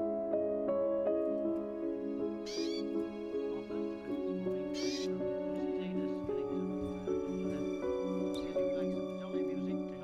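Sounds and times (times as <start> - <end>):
gentle music of soft notes: 0.0 - 10.0
canary calling: 2.2 - 3.5, 4.5 - 5.8.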